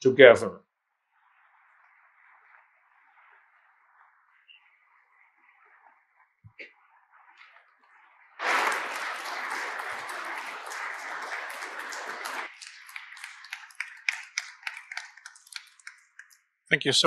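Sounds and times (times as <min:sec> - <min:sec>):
audience applauding: 0:08.4 - 0:16.3.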